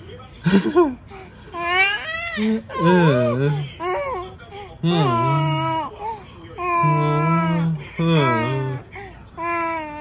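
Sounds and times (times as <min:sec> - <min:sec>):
baby cooing: 0:06.6 - 0:08.8.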